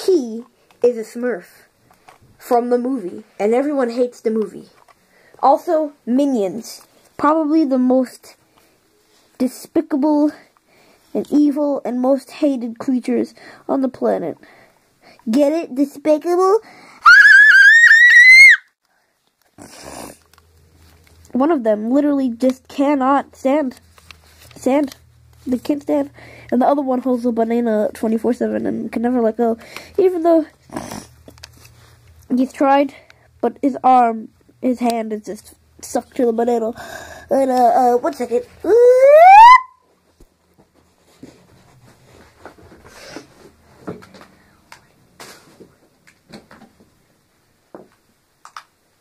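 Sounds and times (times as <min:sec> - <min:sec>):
person's rising ooh: 0:17.0 - 0:18.6, 0:38.7 - 0:39.8.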